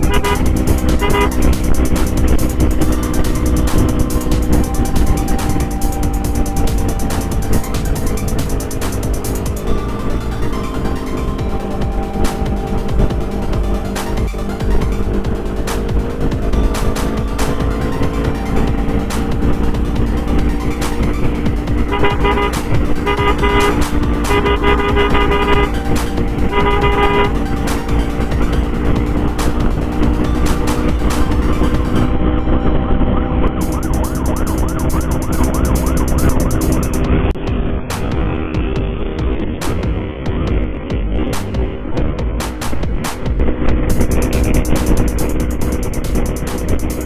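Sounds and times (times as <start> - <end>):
vehicle horn toots: 0.0 - 3.0, 21.7 - 28.2
motorcycle engine and road noise: 0.0 - 47.0.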